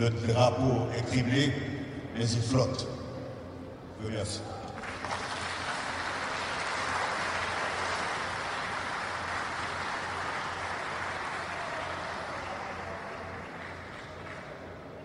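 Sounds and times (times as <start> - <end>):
audience applauding: 4.8 - 15.0.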